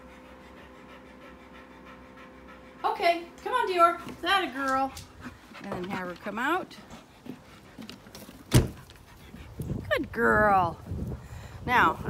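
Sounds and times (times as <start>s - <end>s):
dog panting: 0.0s - 10.2s.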